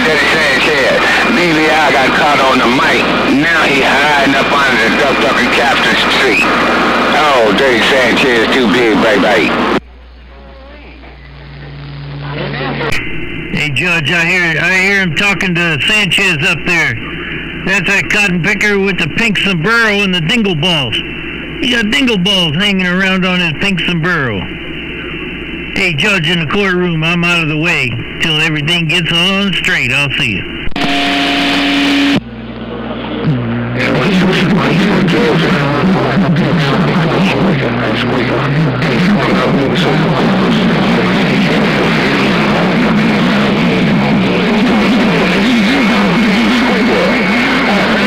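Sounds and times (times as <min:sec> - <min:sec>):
low steady hum: 0:00.0 - 0:48.0
radio static: 0:00.0 - 0:48.0.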